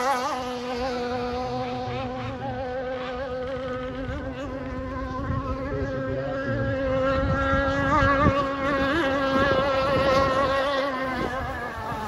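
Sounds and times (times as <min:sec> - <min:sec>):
model boat engine buzzing: 0:00.0 - 0:12.0.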